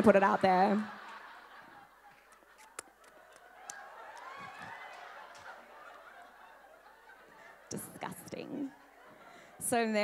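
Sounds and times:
audience laughter: 0.0 - 9.5.

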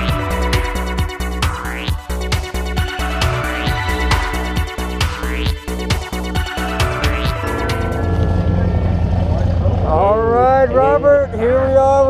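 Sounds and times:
propeller airplane engine running: 0.0 - 12.0.

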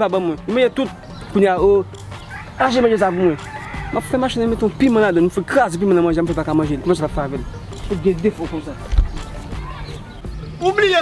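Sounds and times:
rooster crowing: 2.2 - 4.4
man's voice: 10.6 - 11.0.

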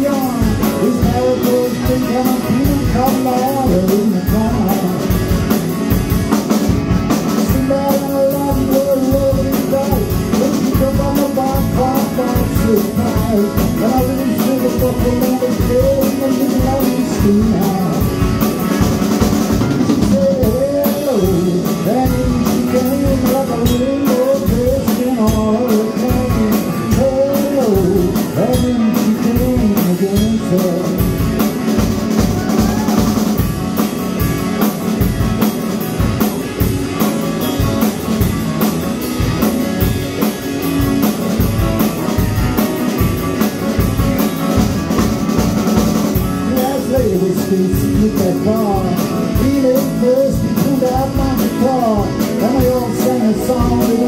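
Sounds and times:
drum kit: 0.0 - 54.0
electric guitar: 0.0 - 54.0
keyboard: 0.0 - 54.0.

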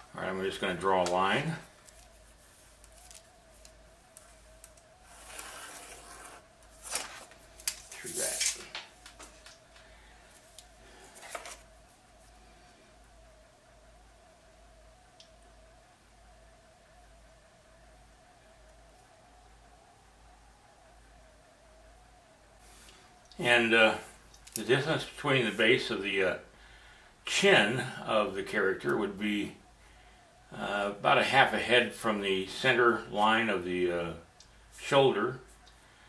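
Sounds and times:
faint steady hum: 0.0 - 36.0.

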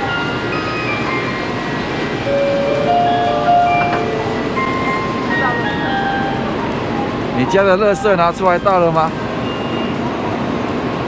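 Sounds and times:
electronic departure melody: 0.0 - 10.2
platform and train noise: 0.0 - 11.0.

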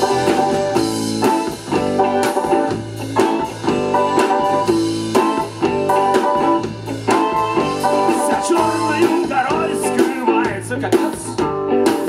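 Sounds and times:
bass guitar: 0.0 - 12.0
electric guitar: 0.0 - 12.0.

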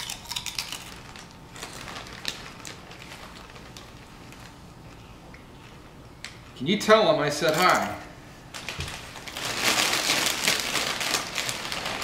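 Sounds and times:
dense crinkling and crackling: 0.9 - 5.0, 8.5 - 12.0.

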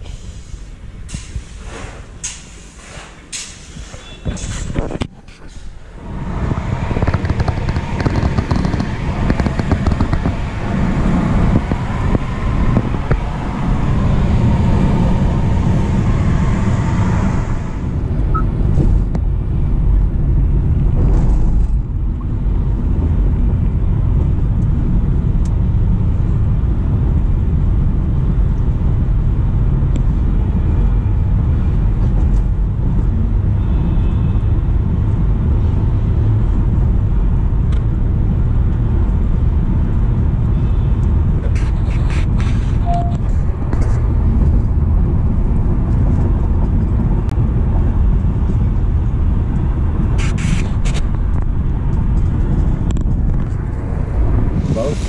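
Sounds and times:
tyre and road rumble: 0.0 - 55.0.

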